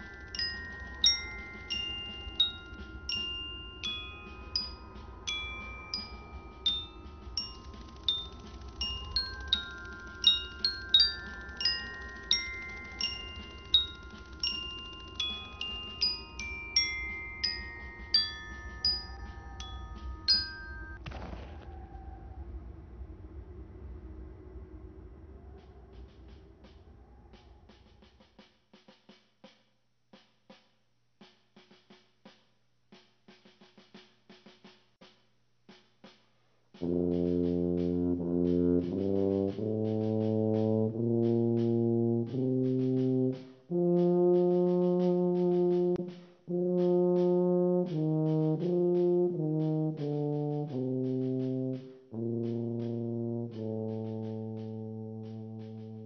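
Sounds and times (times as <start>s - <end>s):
bell-like chime tones: 0.0s - 21.0s
low hum: 18.5s - 28.0s.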